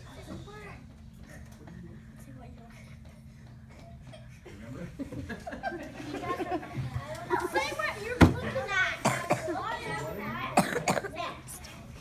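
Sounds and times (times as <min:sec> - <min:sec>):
indistinct voices in a room: 0:00.0 - 0:12.0
short coughs: 0:10.6 - 0:11.2.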